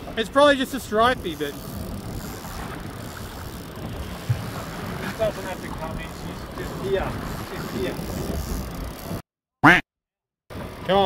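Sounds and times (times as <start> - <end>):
boat and water noise: 0.0 - 9.2, 10.5 - 11.0.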